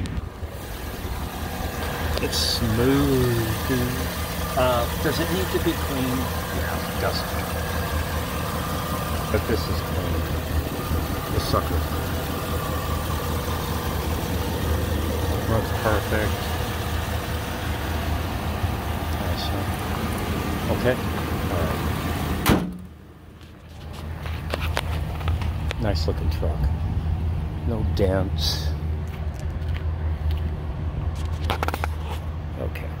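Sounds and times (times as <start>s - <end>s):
pickup engine idling: 0.0s - 32.4s.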